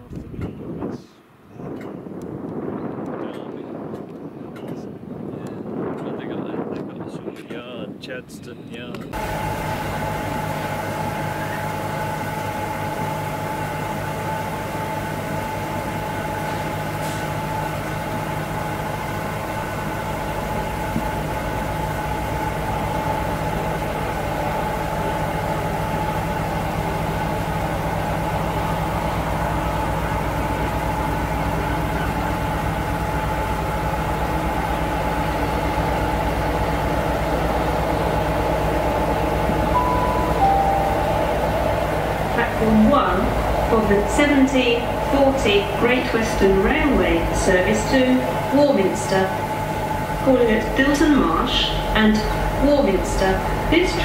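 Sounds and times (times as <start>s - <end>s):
diesel locomotive engine running: 0.0s - 54.0s
two-note station chime: 39.7s - 42.1s.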